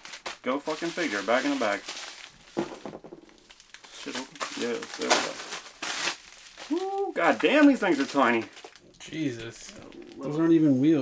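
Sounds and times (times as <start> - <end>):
envelope rustling and crinkling: 0.0 - 11.0.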